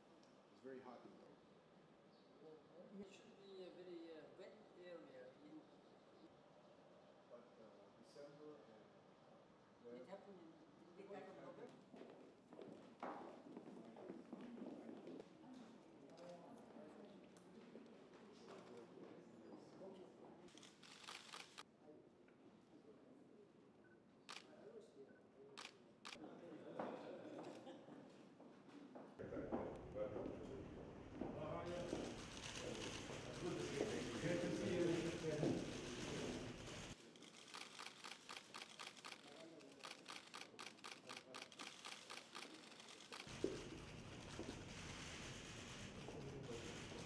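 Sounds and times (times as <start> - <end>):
faint room murmur: 0.0 - 47.0
camera shutters clicking: 20.5 - 21.6, 37.2 - 43.5.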